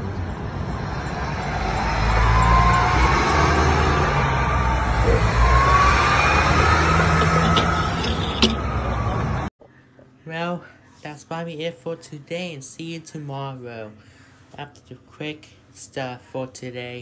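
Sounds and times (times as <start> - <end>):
car engine revving: 0.0 - 9.5
rising engine whines: 0.0 - 9.5.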